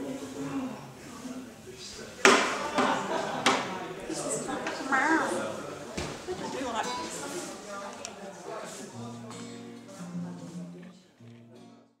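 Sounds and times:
voices talking: 0.0 - 9.3
acoustic guitar low notes: 8.7 - 12.0.

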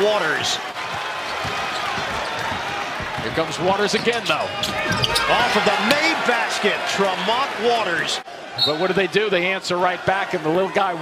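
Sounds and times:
basketball bouncing on hardwood: 0.9 - 5.5.

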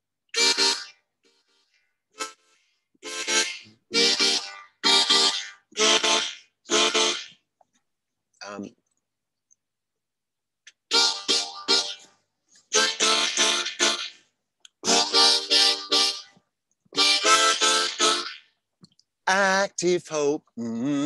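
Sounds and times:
harmonica playing reggae chords: 0.3 - 7.4, 10.7 - 18.6.

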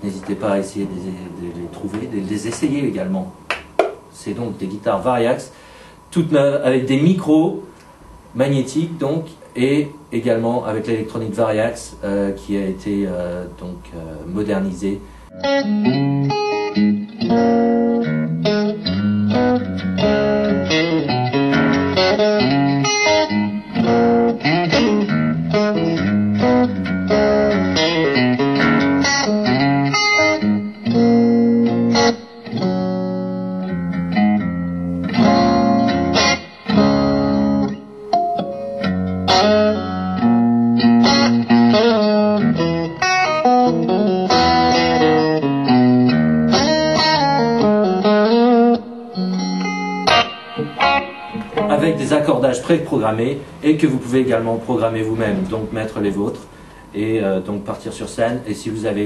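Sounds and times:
electric guitar through amp: 15.0 - 53.7.

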